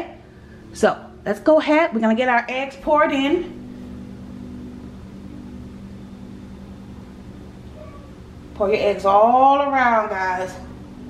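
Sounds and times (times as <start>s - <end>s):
steady low droning hum: 0.0s - 11.0s.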